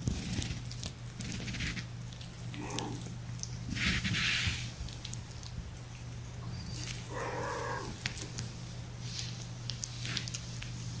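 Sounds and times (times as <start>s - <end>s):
steady low hum: 0.0s - 11.0s
kitten mewing: 2.5s - 3.2s, 6.8s - 8.4s.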